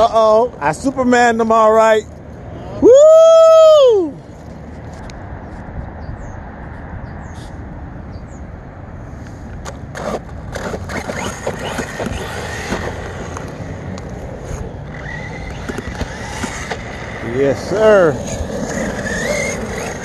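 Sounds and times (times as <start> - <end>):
electric toy truck motor whine: 10.0 - 13.6, 14.8 - 20.0.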